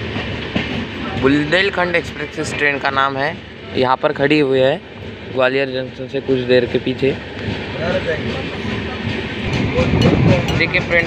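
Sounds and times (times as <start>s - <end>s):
moving train running noise: 0.0s - 11.0s.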